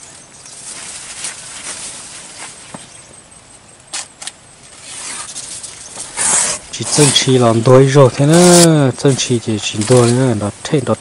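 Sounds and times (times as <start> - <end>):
banana leaves rustling and crackling: 0.0 - 3.1, 3.8 - 11.0
leaves snapping: 8.2 - 10.4.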